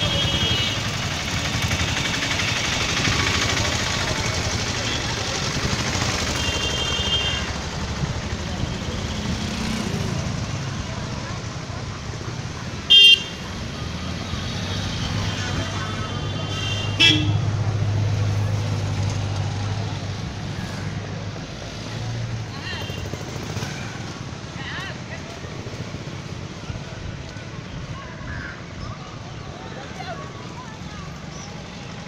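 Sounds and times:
vehicle horns: 0.0s - 3.5s, 6.2s - 7.6s, 12.9s - 13.6s, 15.3s - 17.6s
traffic engine drone: 0.0s - 32.0s.

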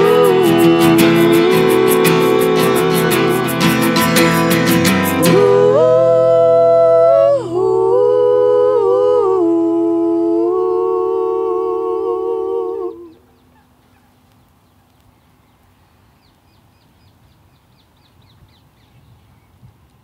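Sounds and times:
acoustic guitar strummed: 0.0s - 7.5s
voices singing close harmony: 0.0s - 13.6s.

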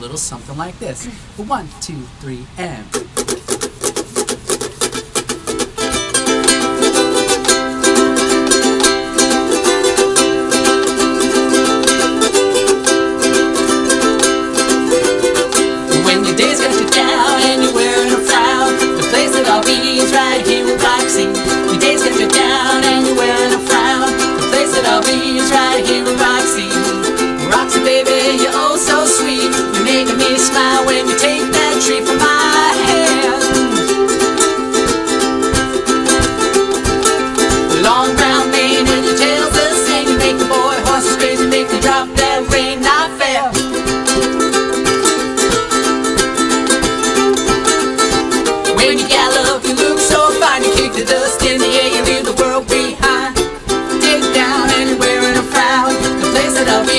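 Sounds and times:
ukuleles strumming: 0.0s - 56.9s
person singing: 14.9s - 44.3s, 48.4s - 56.9s.

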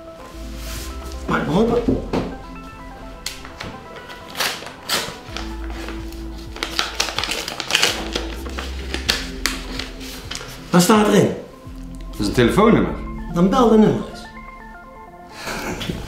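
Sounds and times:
background music with held notes: 0.0s - 16.0s
paper envelope being opened: 3.2s - 10.7s
paper rustling and crackling: 3.2s - 10.8s.

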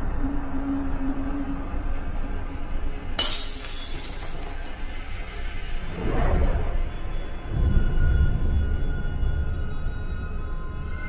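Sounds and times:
dark horror score rumble: 0.0s - 3.2s, 4.0s - 11.0s.

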